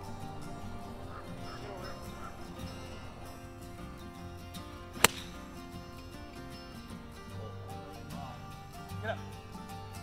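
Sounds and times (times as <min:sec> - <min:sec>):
background music: 0:00.0 - 0:10.0
golf club striking ball: 0:05.0 - 0:05.7.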